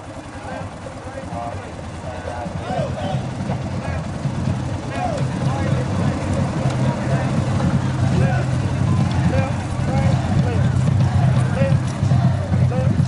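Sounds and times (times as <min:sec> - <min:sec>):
faint voices: 0:00.0 - 0:13.0
vehicle engine rumble: 0:00.0 - 0:13.0.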